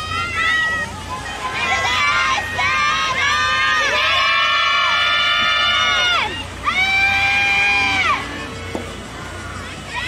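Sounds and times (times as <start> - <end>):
girls shouting team cheer: 0.0 - 8.7.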